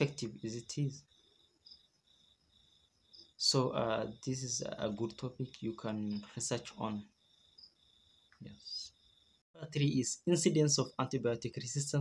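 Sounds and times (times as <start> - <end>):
insect chirping: 0.0 - 12.0.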